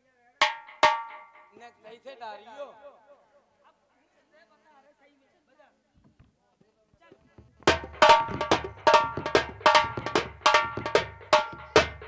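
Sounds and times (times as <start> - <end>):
sharp percussion strikes ringing: 0.4 - 1.7, 7.7 - 12.0.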